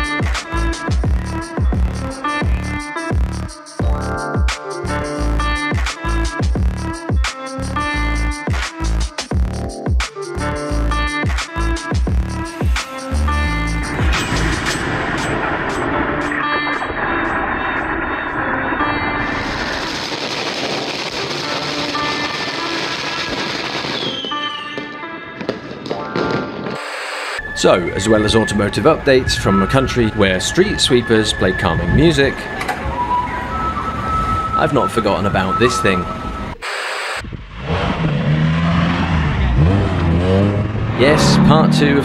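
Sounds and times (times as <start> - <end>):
firecrackers crackling: 12.6 - 27.7, 36.5 - 37.3.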